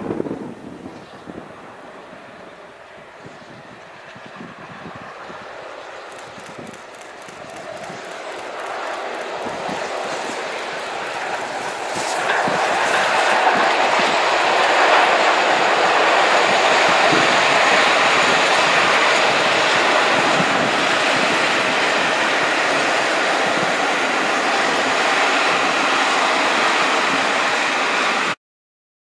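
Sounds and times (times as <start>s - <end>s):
train wheels rolling on rails: 0.0s - 28.4s.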